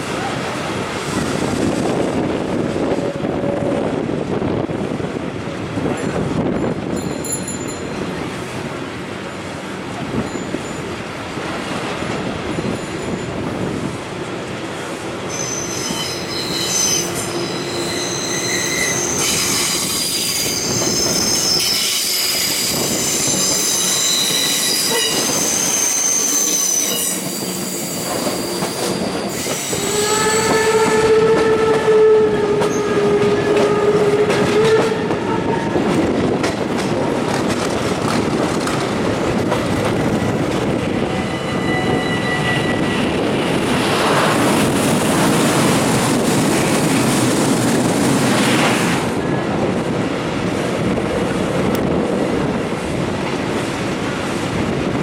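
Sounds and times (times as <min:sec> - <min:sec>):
train rolling over rails: 0:00.0 - 0:55.0
train wheels squealing: 0:15.3 - 0:34.0, 0:41.0 - 0:43.3
locomotive horn: 0:29.7 - 0:35.8.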